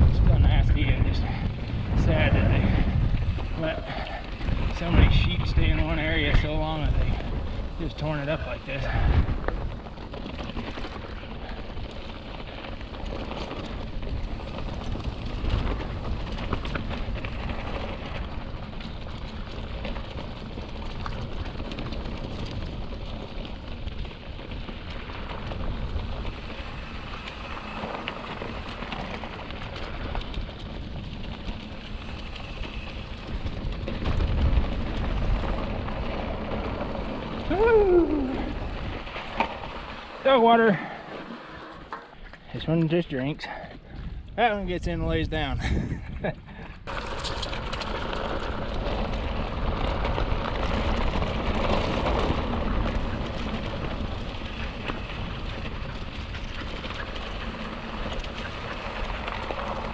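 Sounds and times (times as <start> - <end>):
wind rumble on microphone: 0.0 - 41.0, 41.8 - 59.9
bike tyres crunching on dirt: 0.0 - 59.9.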